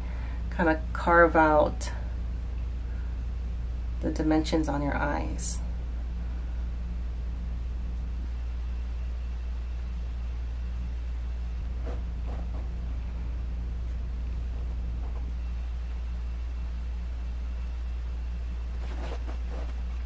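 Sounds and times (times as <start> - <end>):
faint soft sounds: 0.0 - 20.0
low background hum: 0.0 - 20.0.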